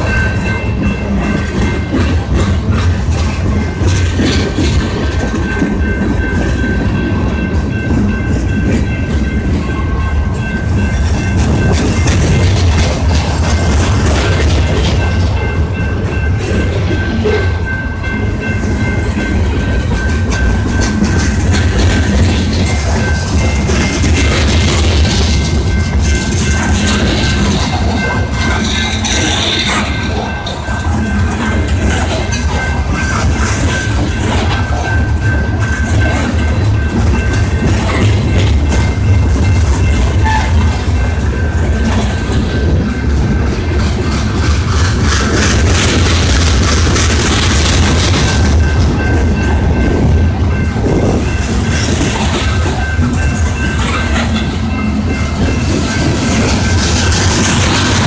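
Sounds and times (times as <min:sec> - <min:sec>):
train cars clicking and rattling: 0:00.0 - 0:58.0
train wheels rumbling on rails: 0:00.0 - 0:58.0.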